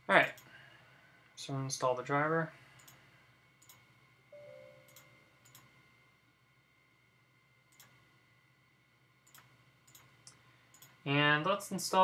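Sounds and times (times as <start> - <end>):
faint steady tone: 2.5 - 11.1
computer mouse clicks: 2.8 - 3.0, 3.6 - 3.9, 4.8 - 5.7, 7.7 - 8.0, 9.2 - 11.0.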